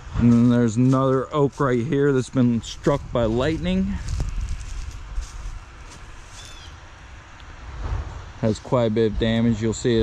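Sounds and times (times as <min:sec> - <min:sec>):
wind buffeting microphone: 0:01.5 - 0:06.8
faint ticks and rustles: 0:03.6 - 0:07.5.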